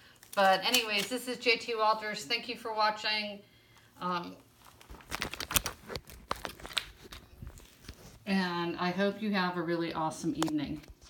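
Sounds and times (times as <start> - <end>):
clicks and rustles: 4.6 - 8.2.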